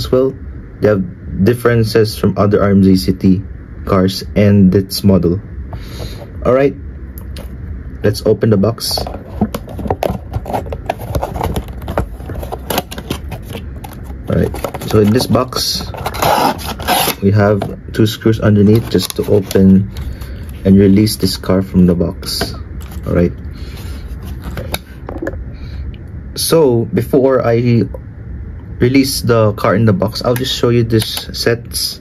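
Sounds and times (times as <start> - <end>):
cardboard box being handled: 9.0 - 17.7.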